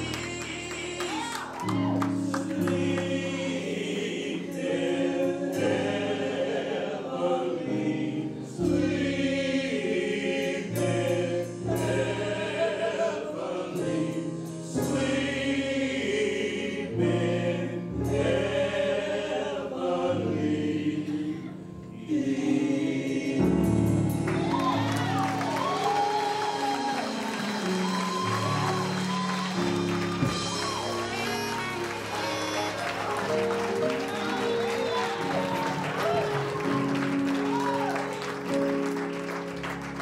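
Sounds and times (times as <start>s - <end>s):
voices singing in harmony: 0.0s - 38.7s
keyboard chords: 0.0s - 40.0s.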